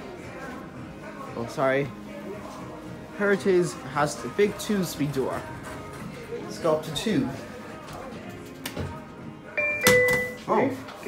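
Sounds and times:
elevator two-note chime: 9.6 - 10.5.

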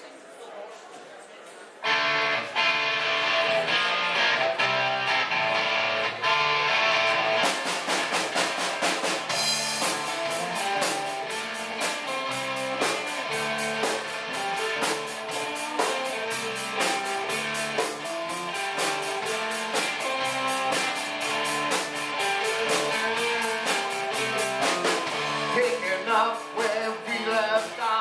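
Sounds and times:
live rock band playing: 1.8 - 28.0.

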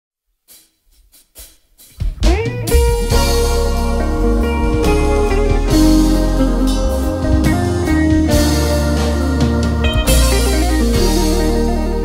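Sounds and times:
live band playing: 2.0 - 12.0.

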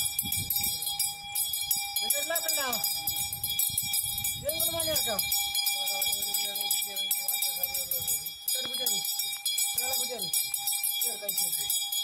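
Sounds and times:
hand bell ringing rapidly: 0.0 - 12.0.

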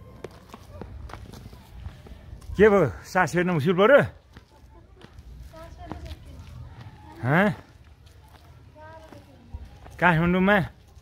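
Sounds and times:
faint distant voices: 0.0 - 11.0
footsteps on road: 0.0 - 11.0.

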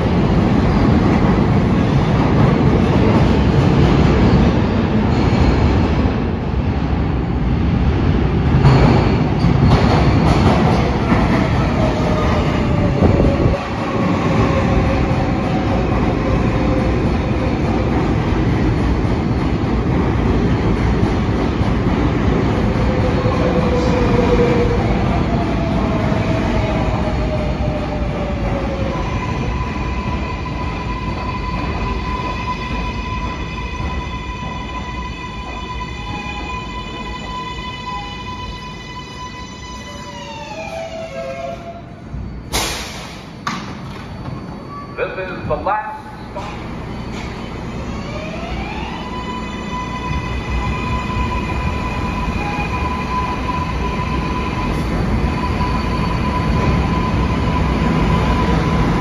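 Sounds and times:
high squeal: 33.9 - 48.2, 49.2 - 58.9.

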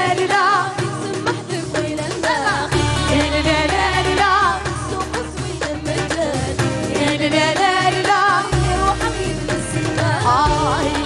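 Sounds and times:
band accompaniment: 0.0 - 11.0
women singing: 0.0 - 11.0.

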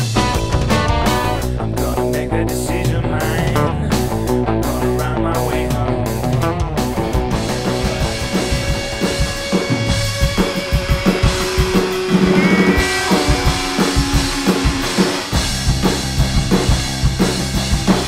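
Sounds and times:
rock music with drums and guitar: 0.0 - 18.0.

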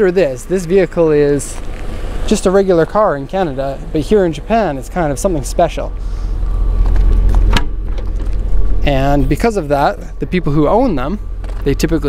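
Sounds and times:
steady low rumble: 0.0 - 12.0
liftgate handle click: 7.0 - 8.2.

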